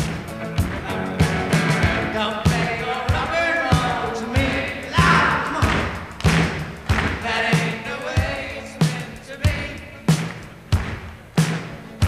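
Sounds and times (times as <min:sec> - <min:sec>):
electric guitars: 0:00.0 - 0:09.1
kick-drum beat: 0:00.0 - 0:11.7
man singing: 0:00.8 - 0:06.0, 0:07.1 - 0:10.3.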